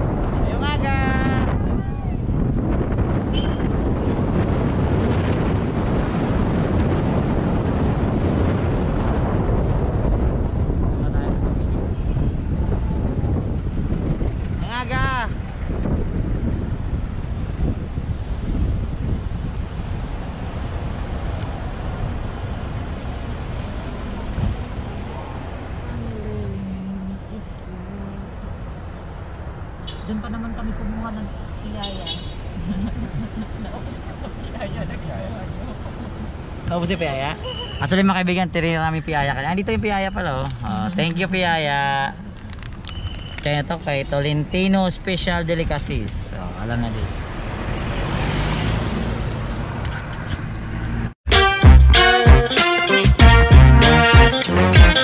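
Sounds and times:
wind buffeting microphone: 0:00.0 - 0:37.9.

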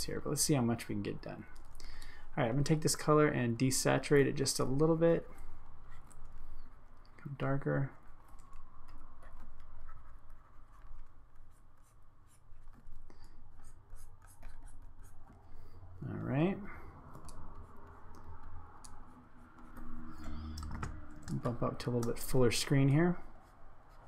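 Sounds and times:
stylus scratching on drawing tablet: 0:04.3 - 0:07.1, 0:07.9 - 0:20.5.

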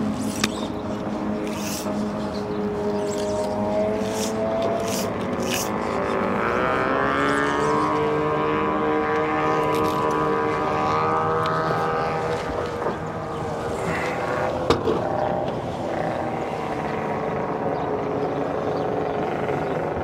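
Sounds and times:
motorboat engine running: 0:00.0 - 0:20.0.

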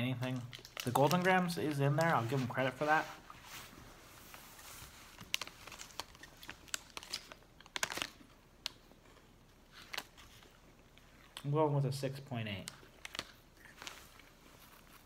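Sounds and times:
wrapper crackling: 0:00.0 - 0:11.0, 0:12.5 - 0:15.0
cereal bars crunching when chewed: 0:00.2 - 0:02.3, 0:05.1 - 0:11.5, 0:12.6 - 0:15.0.

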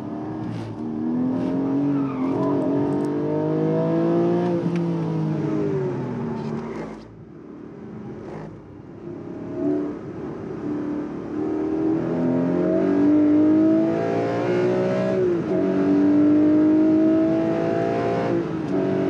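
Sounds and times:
car engine accelerating hard: 0:11.2 - 0:19.0.

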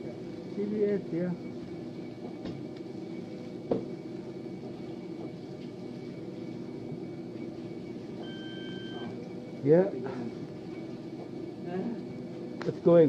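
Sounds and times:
low machine hum: 0:00.0 - 0:13.0
electronic beep: 0:08.2 - 0:09.2.

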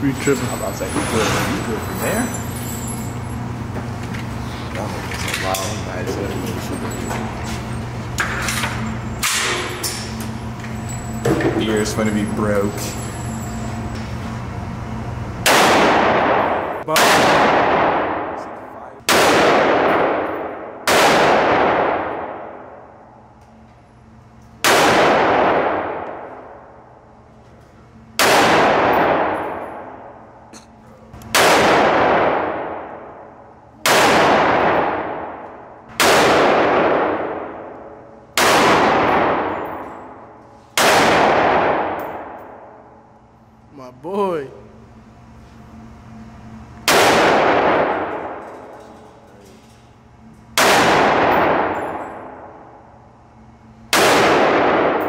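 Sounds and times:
gunshots in indoor range: 0:07.8 - 0:10.9, 0:15.1 - 0:27.4, 0:28.1 - 0:30.5, 0:31.2 - 0:43.4, 0:46.8 - 0:49.8, 0:50.5 - 0:55.0.

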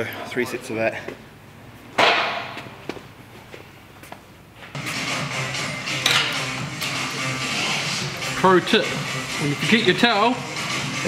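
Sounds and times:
background music: 0:04.8 - 0:11.0.

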